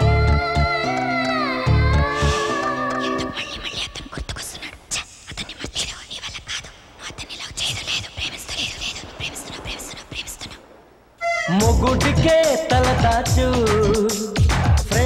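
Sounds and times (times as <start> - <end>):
breathy whispering: 2.2 - 10.6.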